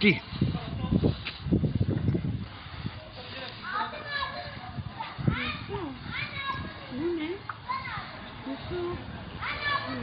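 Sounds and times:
children calling and talking: 2.2 - 10.0.

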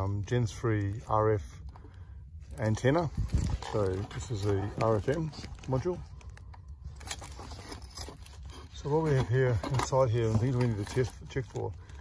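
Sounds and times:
handling clicks and rustles: 0.0 - 12.0
steady low hum: 0.0 - 12.0.

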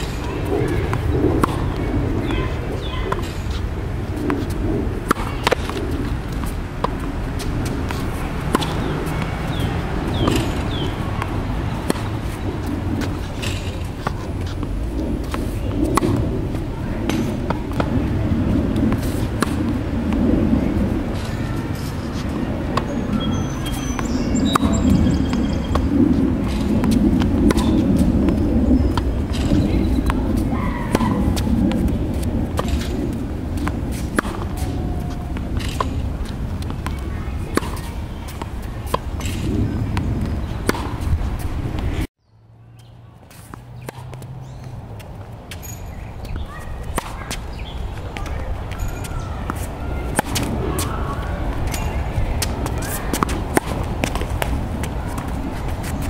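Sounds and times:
racket striking tennis ball: 0.0 - 42.0, 43.3 - 56.0
low outdoor rumble: 0.0 - 56.0.

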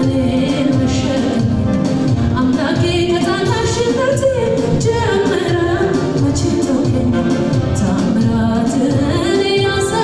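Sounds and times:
instrumental backing with steady beat: 0.0 - 10.0
woman singing: 0.0 - 10.0.

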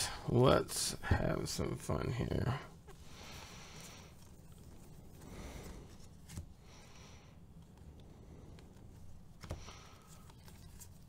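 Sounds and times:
cards rustling and flipping: 2.8 - 11.0.

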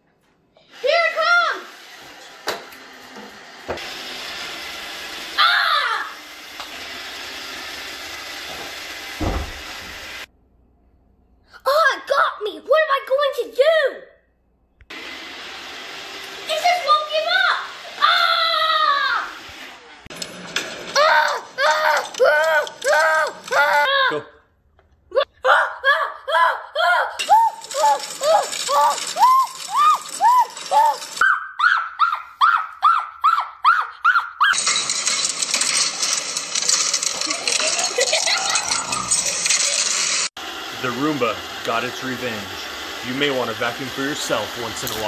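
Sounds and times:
child crying out: 5.4 - 6.2, 17.9 - 19.4, 20.9 - 24.4, 25.1 - 34.6
robot vacuum motor whirring: 14.9 - 23.9, 27.2 - 31.2, 34.5 - 45.0.

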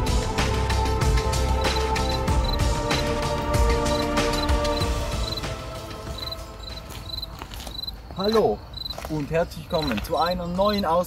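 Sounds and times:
pitched music: 0.0 - 6.8
cricket chirping: 1.2 - 10.9.

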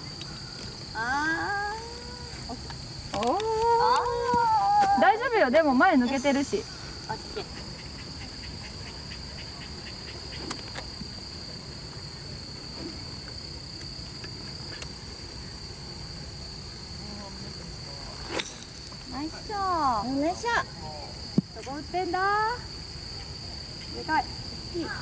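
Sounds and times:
voices: 0.0 - 13.4, 16.8 - 25.0
insects chorus: 0.0 - 25.0
golf club striking ball: 18.2 - 19.0.

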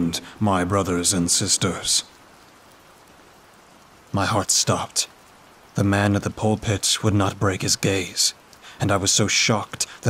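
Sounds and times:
faint steady rain: 0.0 - 10.0.

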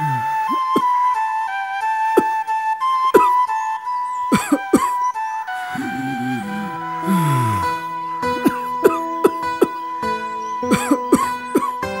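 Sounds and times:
slow flute melody: 0.0 - 12.0.

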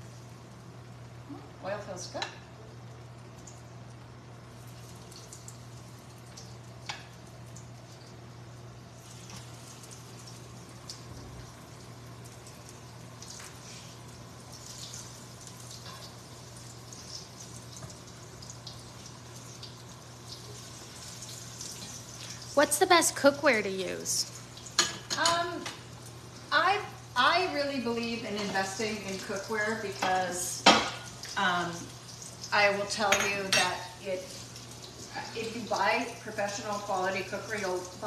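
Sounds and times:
food frying in oil crackle: 0.0 - 38.0.

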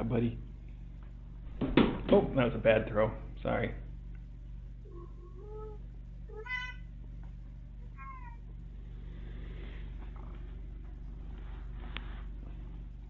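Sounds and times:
cat meowing: 6.3 - 6.9, 8.0 - 8.4.

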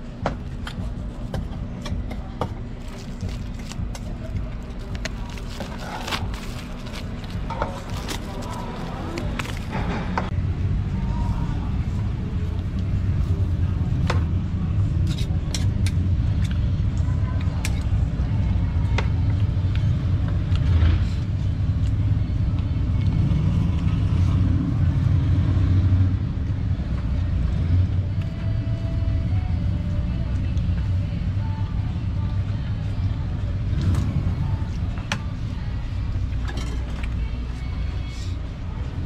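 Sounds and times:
low rumble: 0.0 - 37.5
people talking: 1.9 - 9.9, 16.9 - 19.1.

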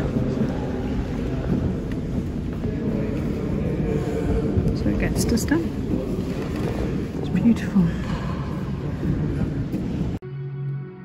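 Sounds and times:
low rumbling background noise: 0.0 - 10.2.

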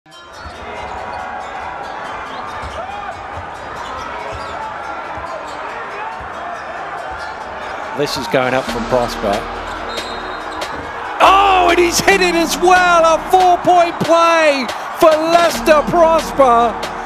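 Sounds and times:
arena crowd hubbub: 0.1 - 17.0.

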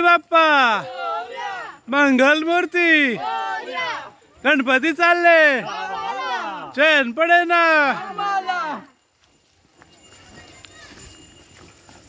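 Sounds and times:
footsteps on dirt path: 7.8 - 12.0.

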